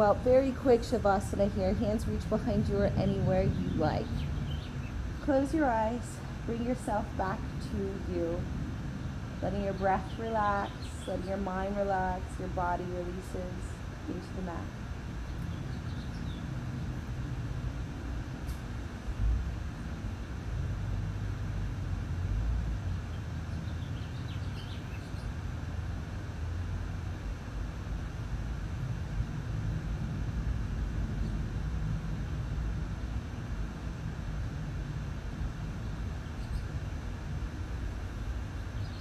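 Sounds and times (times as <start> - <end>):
low outdoor rumble: 0.0 - 39.0.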